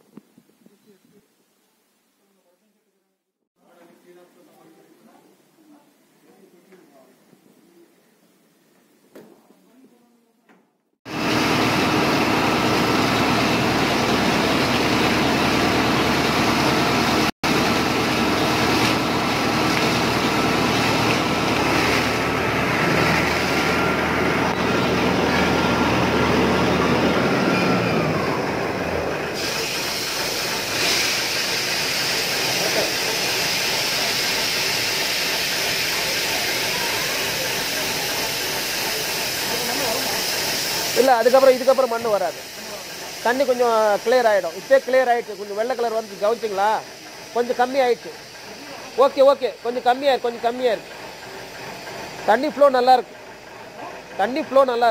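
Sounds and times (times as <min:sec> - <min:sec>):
compressor engine drone: 0:11.1 - 0:54.9
compressed air rushing hiss: 0:29.2 - 0:52.4.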